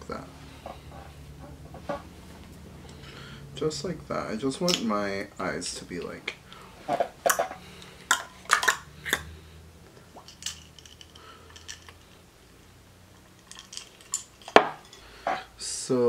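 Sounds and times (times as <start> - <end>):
hard objects clicking and clinking: 7.0 - 9.3, 10.2 - 12.2, 13.2 - 15.4.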